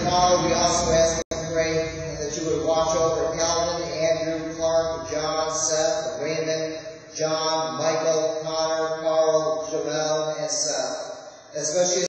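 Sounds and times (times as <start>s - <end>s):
voice chanting liturgy: 0.0s - 12.0s.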